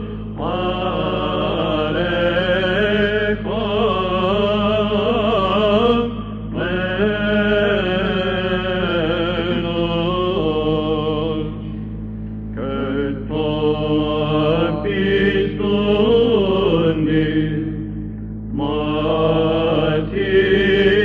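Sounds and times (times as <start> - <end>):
held vocal drone: 0.0 - 21.0.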